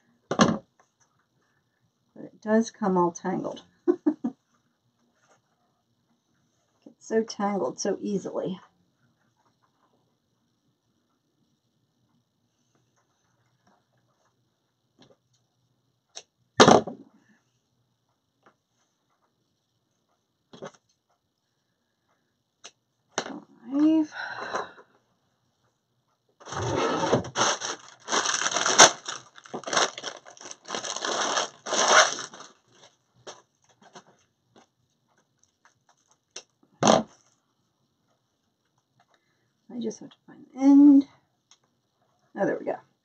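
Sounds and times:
crinkling rustle of metallic mesh: 27.3 - 33.0.

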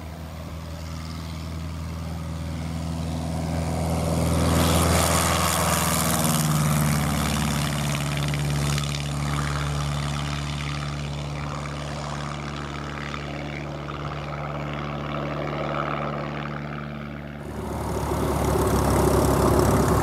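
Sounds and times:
light aircraft engine and propeller: 0.0 - 20.0.

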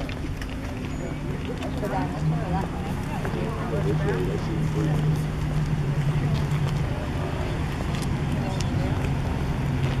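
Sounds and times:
faint voices: 0.0 - 10.0
low engine-like hum: 0.0 - 10.0.

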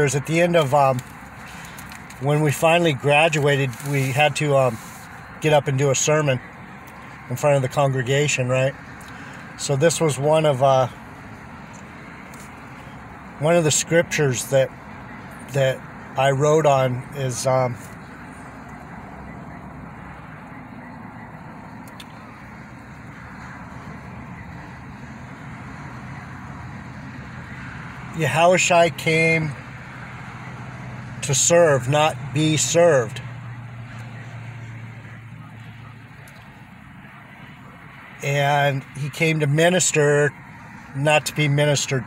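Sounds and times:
vehicle rumble inside cab: 0.0 - 42.0.

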